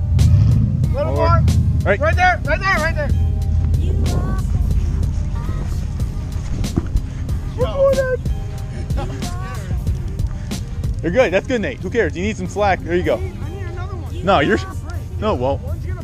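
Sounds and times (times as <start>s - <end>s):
background music with a beat: 0.0s - 16.0s
truck engine idling: 0.0s - 16.0s.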